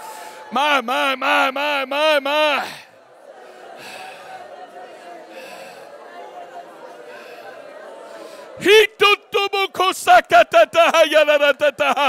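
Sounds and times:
congregation praying aloud: 0:00.0 - 0:12.0.

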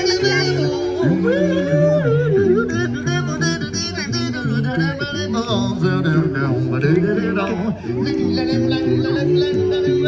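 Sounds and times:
pulsing bass line: 0:00.0 - 0:10.0
vocal group singing: 0:00.0 - 0:10.0.

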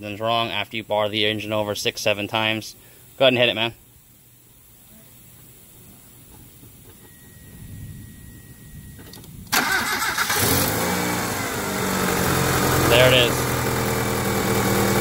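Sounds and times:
engine cranking and starting: 0:09.5 - 0:13.8
engine idling: 0:09.5 - 0:15.0.

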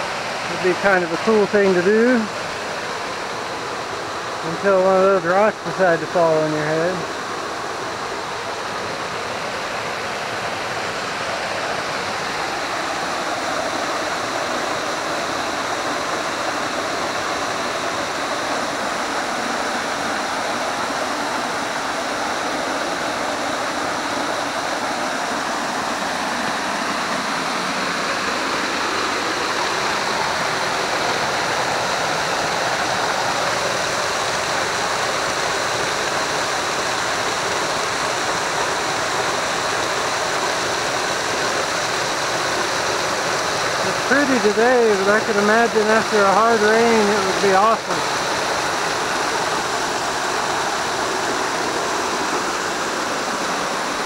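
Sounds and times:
waterfall pouring over rocks: 0:00.0 - 0:54.0.

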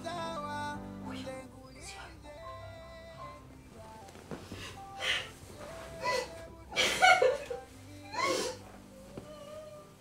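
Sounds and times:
woman crying wail: 0:06.0 - 0:08.6.

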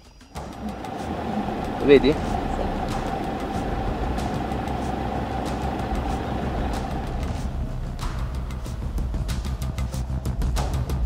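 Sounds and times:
steady higher whine: 0:00.4 - 0:09.2
vehicle engine idling: 0:00.4 - 0:09.4.

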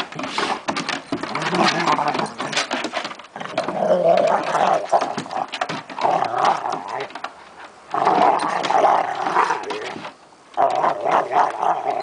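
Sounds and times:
dogs growling: 0:01.2 - 0:07.2, 0:07.9 - 0:10.0, 0:10.6 - 0:12.0.

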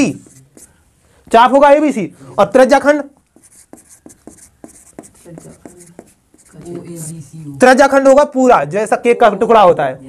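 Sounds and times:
marker pen writing on whiteboard: 0:00.0 - 0:01.4, 0:03.0 - 0:07.1.

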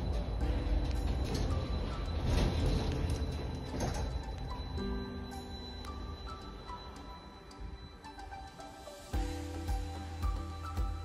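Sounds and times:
lift cabin rumble and whine: 0:00.0 - 0:11.0.

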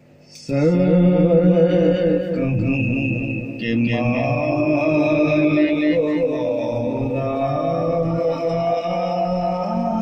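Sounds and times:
man singing devotional song: 0:00.3 - 0:10.0.

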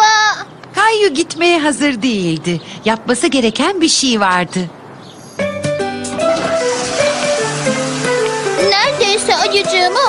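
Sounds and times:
background music: 0:05.4 - 0:10.0
toilet flushing: 0:06.1 - 0:10.0.

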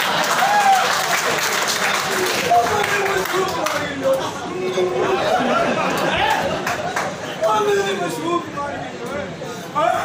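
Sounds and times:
audience applause: 0:00.0 - 0:04.2, 0:05.4 - 0:07.6.

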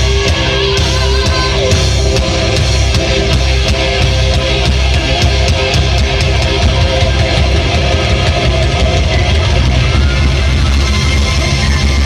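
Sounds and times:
heavy metal band playing live: 0:00.0 - 0:12.0.

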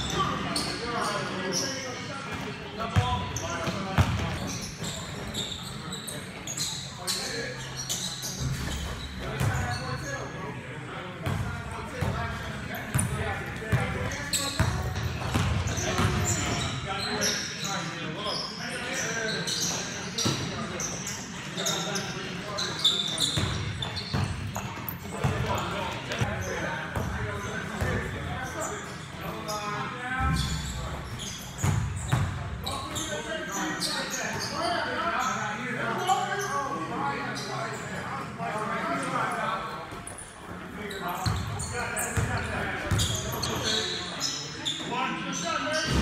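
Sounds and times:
sneaker squeaks: 0:00.0 - 0:10.4, 0:11.2 - 0:38.3, 0:38.9 - 0:46.0
basketball bouncing on court: 0:02.9 - 0:04.9, 0:12.9 - 0:16.5, 0:42.2 - 0:43.2.

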